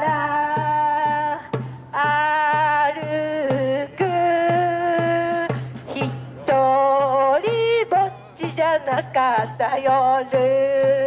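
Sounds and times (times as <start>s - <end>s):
hand drum beat: 0.0s - 11.0s
woman singing through loudspeaker: 0.0s - 11.0s.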